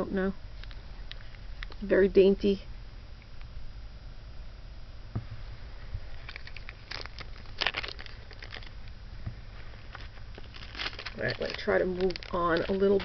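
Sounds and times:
steady low hum: 0:00.0 - 0:13.0
plastic packaging crinkling: 0:06.1 - 0:08.9, 0:09.7 - 0:13.0.

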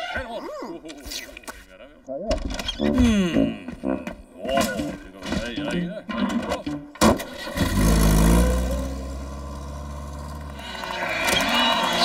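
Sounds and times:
engine starting and running: 0:06.6 - 0:12.0.

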